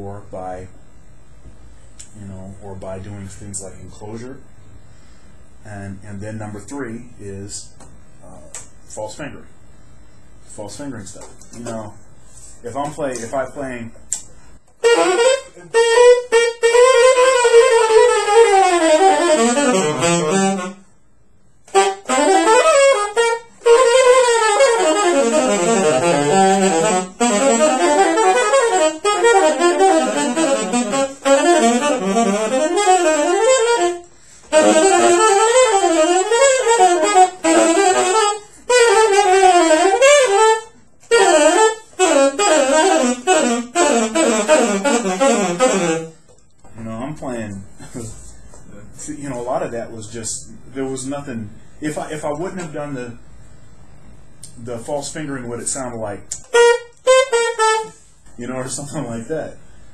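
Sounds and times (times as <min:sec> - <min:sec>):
saxophone playing jazz lines: 0:11.2 - 0:21.0, 0:21.6 - 0:46.6, 0:56.3 - 0:59.8.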